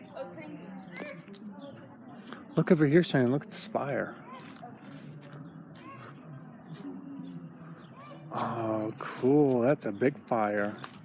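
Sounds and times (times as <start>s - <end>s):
distant voices chattering: 0.0s - 11.0s.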